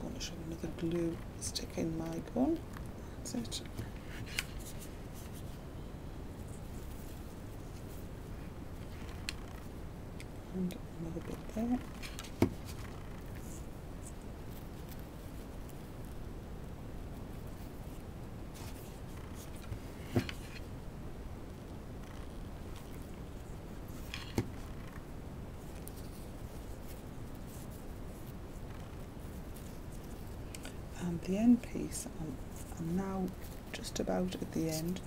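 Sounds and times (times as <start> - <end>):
background hiss: 0.0 - 35.0
ribbon rustling and crackling: 0.8 - 5.6, 6.4 - 16.3, 17.1 - 20.7, 22.0 - 35.0.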